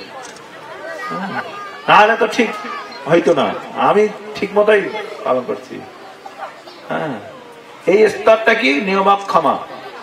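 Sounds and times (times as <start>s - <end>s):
voices talking in background: 0.0s - 10.0s.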